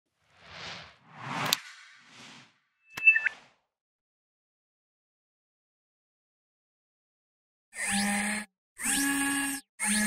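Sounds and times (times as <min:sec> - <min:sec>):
soft whoosh: 0:00.3 - 0:03.4
bright two-tone chirp: 0:02.8 - 0:03.5.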